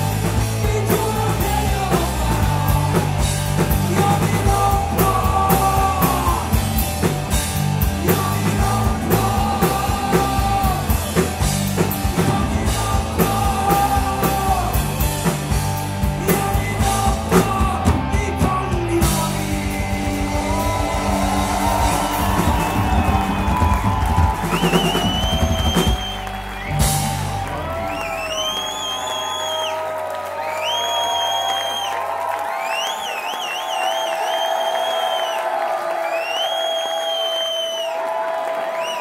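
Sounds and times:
live rock band playing: 0.0s - 29.1s.

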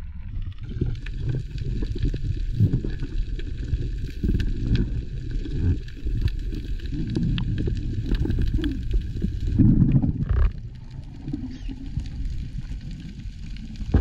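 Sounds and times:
muffled underwater rumble: 0.0s - 14.0s.

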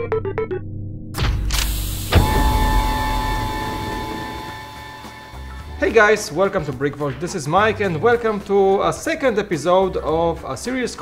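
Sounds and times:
sci-fi doors whooshing: 1.2s - 4.9s
ringing metallic hit: 2.1s - 5.8s.

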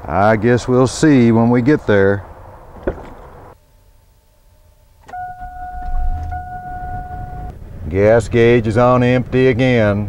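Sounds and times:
high-pitched dashboard warning tone: 4.7s - 7.6s
ignition key click: 5.0s - 7.5s
car engine rumbling: 5.0s - 10.0s.

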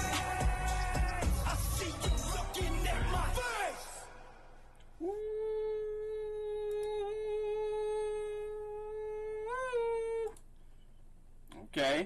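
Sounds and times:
person humming a high note: 5.0s - 10.4s.

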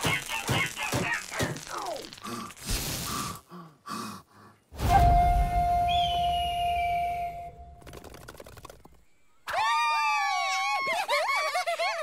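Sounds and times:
women cheering: 9.5s - 11.1s.

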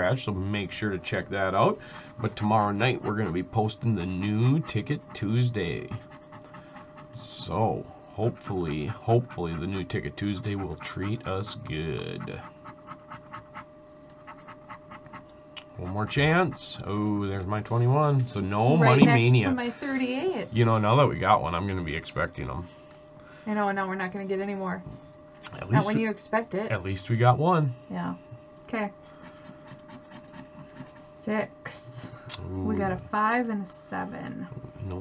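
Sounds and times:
stick scratching lottery ticket: 1.0s - 7.6s, 8.2s - 19.3s, 29.2s - 31.3s.

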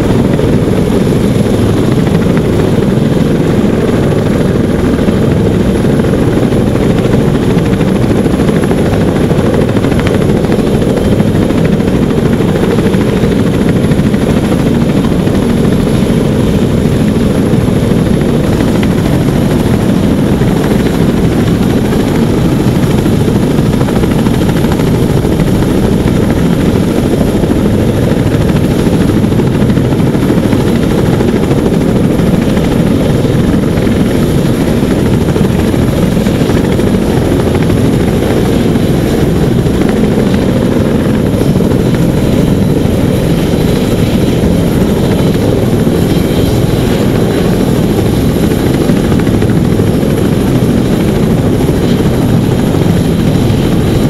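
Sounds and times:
helicopter rotor and turbine noise: 0.0s - 54.0s.

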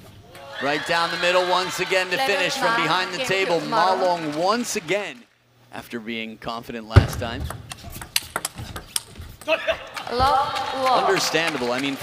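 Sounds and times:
person speaking: 1.1s - 4.9s
table tennis ball clicks: 7.5s - 9.2s.

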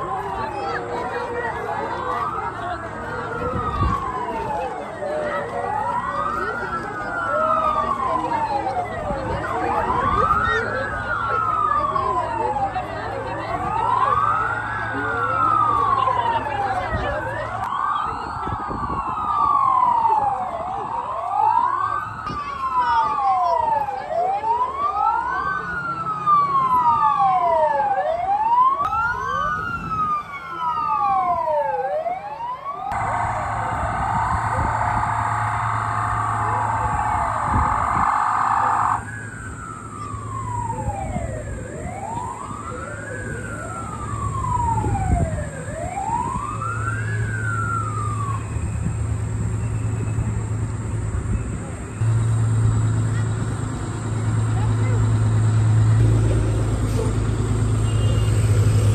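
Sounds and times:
sirens wailing: 0.0s - 58.9s
steady blaring tone: 32.8s - 58.9s.

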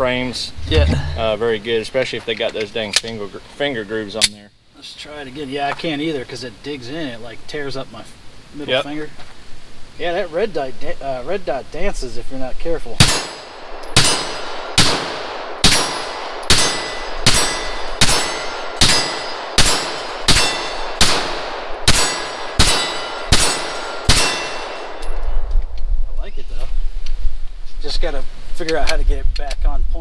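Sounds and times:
low rumble: 0.4s - 1.7s
pistol shots: 13.0s - 25.2s.

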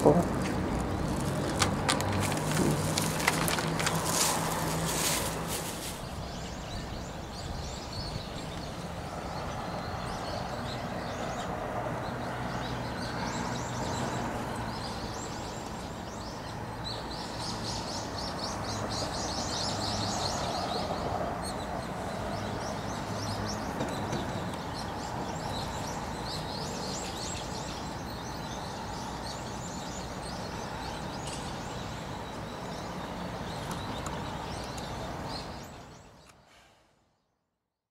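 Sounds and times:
birds chirping: 0.0s - 36.5s
low city hum: 0.0s - 36.5s.

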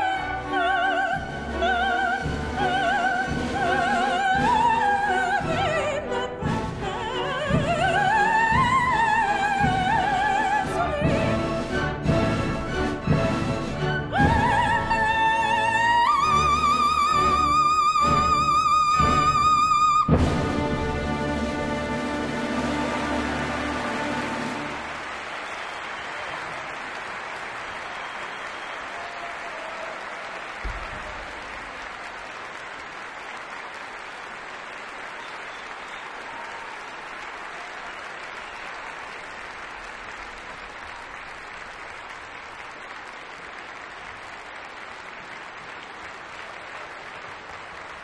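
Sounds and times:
audience applauding: 0.0s - 48.0s.

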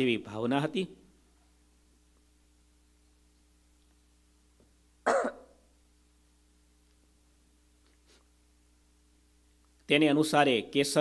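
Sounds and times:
man coughing: 5.1s - 5.5s.

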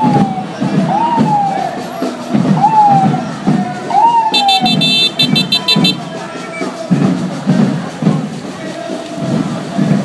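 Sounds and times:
ambulance siren wailing: 0.0s - 6.8s.

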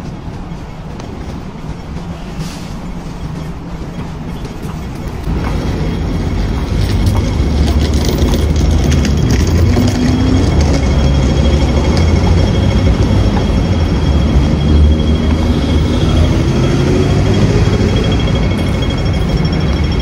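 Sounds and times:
low street rumble: 0.0s - 20.0s
crossing signal ticking: 3.0s - 20.0s.

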